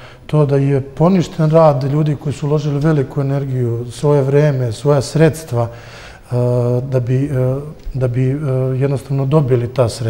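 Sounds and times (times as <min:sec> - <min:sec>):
man speaking: 0:00.3 - 0:10.0.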